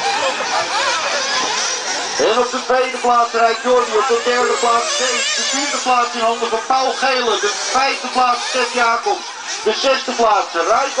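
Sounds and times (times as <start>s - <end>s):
rc buggy motors whining: 0.0s - 11.0s.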